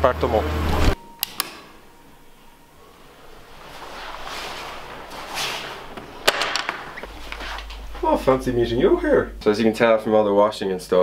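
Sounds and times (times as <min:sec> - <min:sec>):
sharp clicks: 0:01.2 - 0:01.6
soft rustling: 0:02.8 - 0:08.7.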